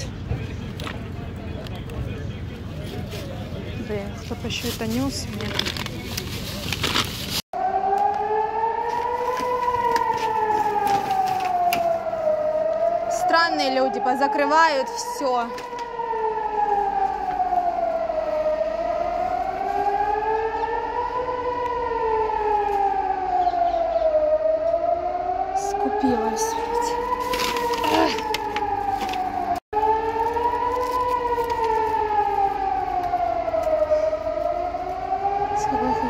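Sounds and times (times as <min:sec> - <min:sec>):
air-raid siren wailing: 0:07.5 - 0:36.0.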